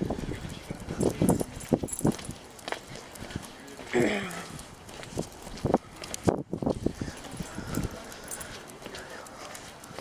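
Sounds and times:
footsteps on concrete sidewalk: 0.0 - 10.0.

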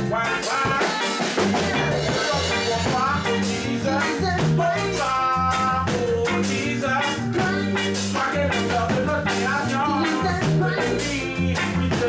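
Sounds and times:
reggae band playing: 0.0 - 12.0.

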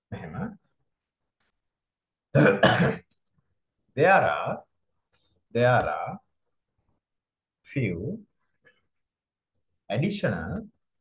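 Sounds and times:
man clearing his throat: 2.4 - 3.1.

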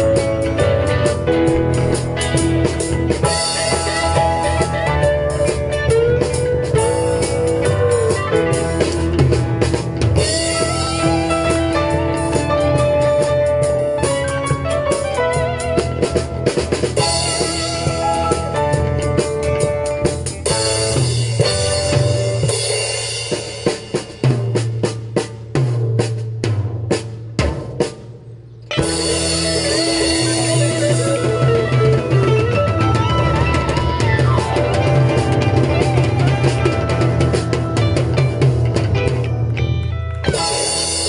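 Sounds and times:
bending guitar lead line: 0.0 - 24.8, 27.4 - 41.0
drum hits: 0.0 - 41.0
live rock band playing: 0.0 - 41.0.

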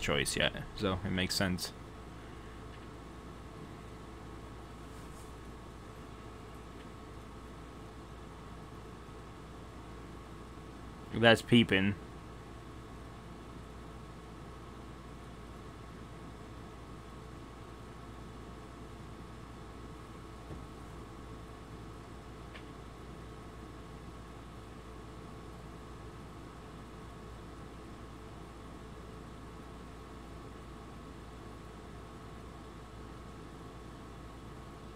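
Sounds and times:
faint electrical hum: 0.0 - 34.9.

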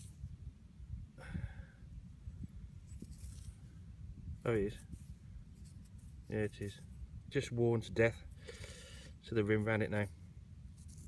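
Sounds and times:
wind rumble on microphone: 0.0 - 8.3
faint handling noise: 2.7 - 8.6.

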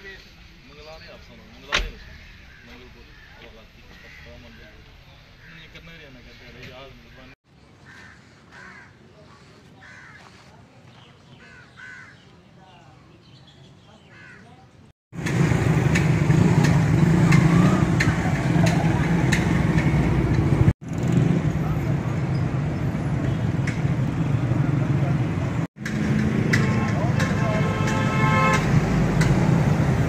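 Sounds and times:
motorcycle and car engines passing: 15.2 - 30.0
vehicle horn: 26.4 - 28.9.

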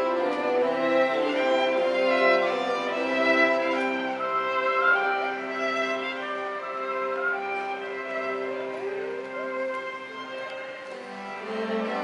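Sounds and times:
string orchestra bowed notes: 0.0 - 12.0.

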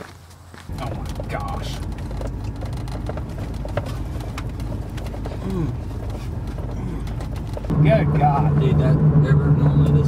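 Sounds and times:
pickup engine and road rumble: 0.0 - 10.0.

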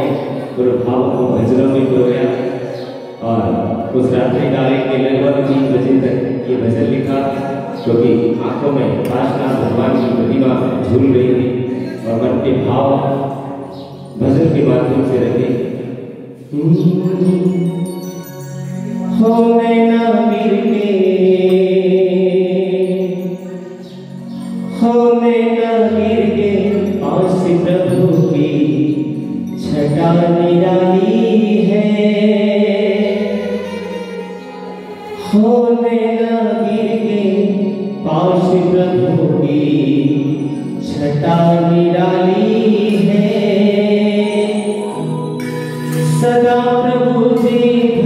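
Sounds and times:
man singing devotional song: 0.0 - 48.0
sustained electronic keyboard: 0.0 - 48.0.

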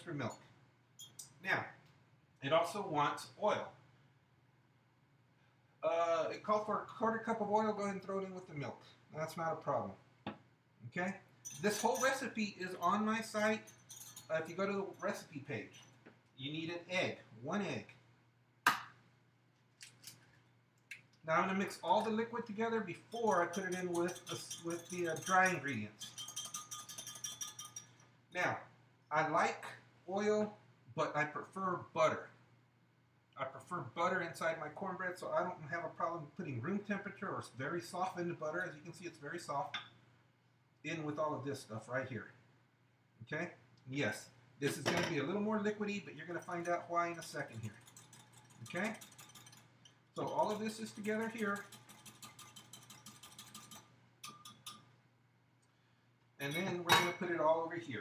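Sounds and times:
whisk clinking against bowl: 11.4 - 15.9, 23.1 - 28.0, 46.3 - 54.8.

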